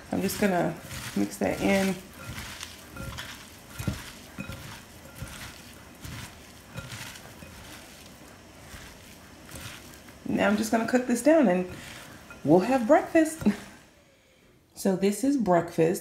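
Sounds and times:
utensil tapping bowl: 0.0 - 13.8
vegetables rustling in bowl: 0.0 - 14.0.

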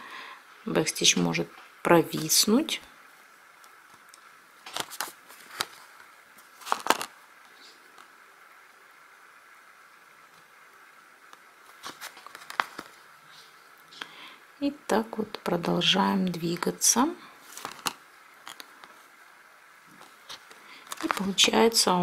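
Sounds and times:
faint steady hiss: 0.0 - 22.0.

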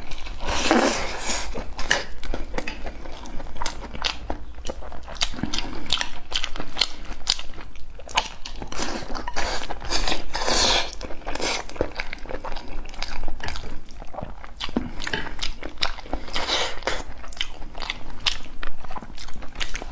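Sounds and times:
chewing and mouth sounds: 0.0 - 19.9.

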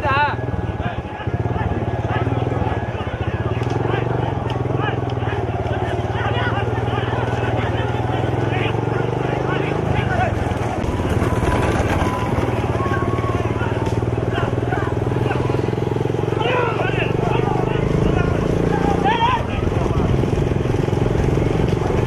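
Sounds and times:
men shouting: 0.0 - 21.1
vehicle engine running: 0.0 - 22.0.

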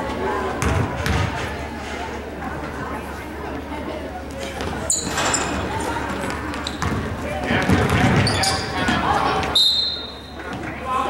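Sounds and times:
crowd talking: 0.0 - 11.0
basketball bouncing on hardwood: 6.8 - 7.0.

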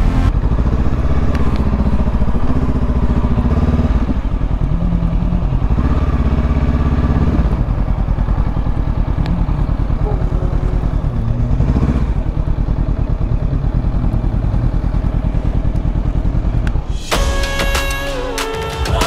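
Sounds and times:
motorcycle engine at low revs: 0.0 - 17.1.

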